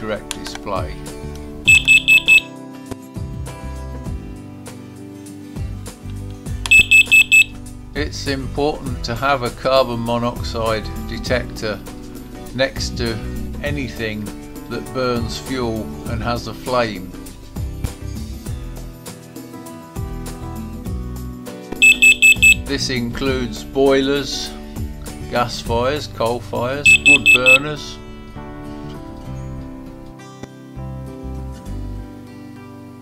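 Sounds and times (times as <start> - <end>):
background music: 0.0 - 33.0
alarm beeping: 1.7 - 2.5, 6.7 - 7.6, 21.8 - 22.6, 26.9 - 27.6.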